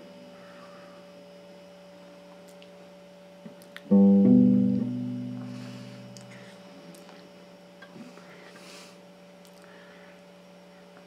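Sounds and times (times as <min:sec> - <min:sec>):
steady electrical hum: 0:00.0 - 0:11.0
electric guitar chord ringing: 0:03.9 - 0:06.4.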